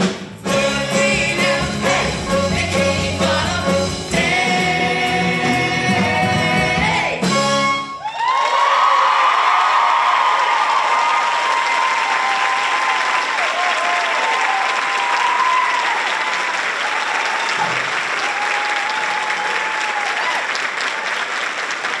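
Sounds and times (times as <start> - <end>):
people cheering: 7.8 - 22.0
audience applauding: 8.0 - 22.0.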